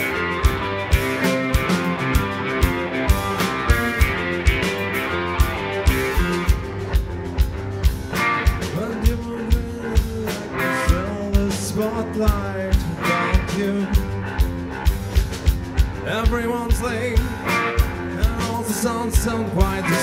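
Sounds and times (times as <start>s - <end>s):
drum hits: 0.0s - 19.9s
rock band playing: 0.0s - 20.0s.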